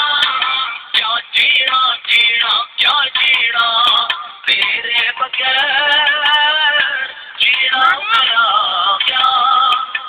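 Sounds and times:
song with wavering vocal melody: 0.0s - 10.0s.

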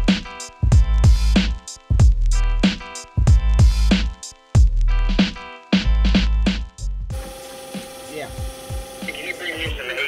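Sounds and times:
factory machinery hum: 7.1s - 10.0s.

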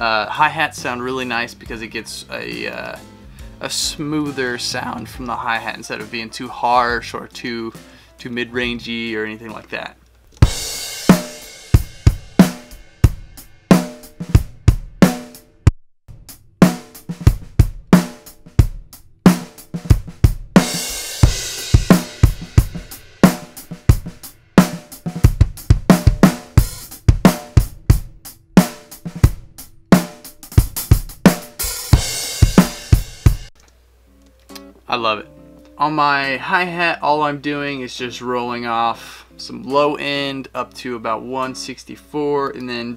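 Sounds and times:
drum kit groove: 0.0s - 7.9s, 8.6s - 33.6s
crash cymbal washes: 10.5s - 14.1s, 20.6s - 24.9s.

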